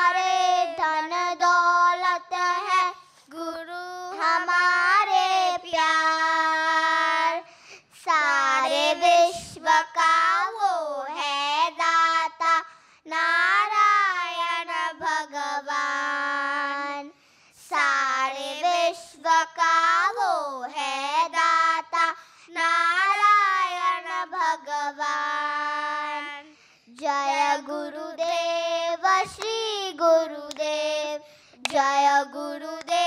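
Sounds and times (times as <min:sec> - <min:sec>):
children singing devotional song: 0:00.0 - 0:33.0
short breaths: 0:03.0 - 0:03.3, 0:07.4 - 0:08.1, 0:12.6 - 0:13.1, 0:17.1 - 0:17.7, 0:22.1 - 0:22.5, 0:26.4 - 0:27.0, 0:31.2 - 0:31.6.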